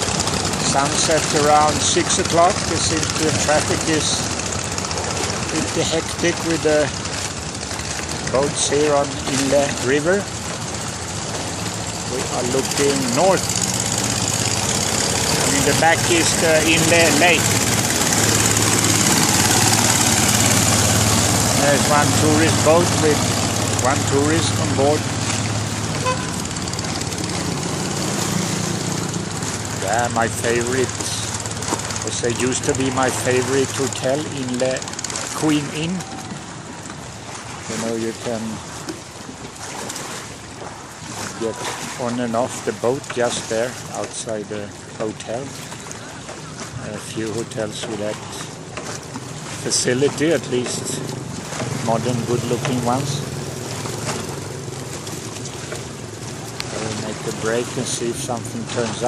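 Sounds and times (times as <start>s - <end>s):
boat engine running: 0.0s - 59.0s
water wash: 0.0s - 59.0s
wind: 0.0s - 59.0s.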